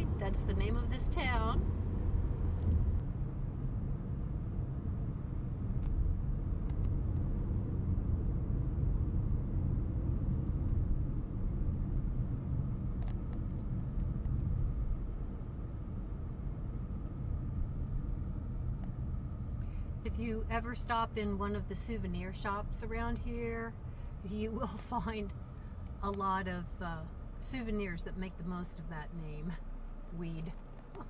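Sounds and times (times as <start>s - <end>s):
car road and engine rumble: 0.0s - 31.0s.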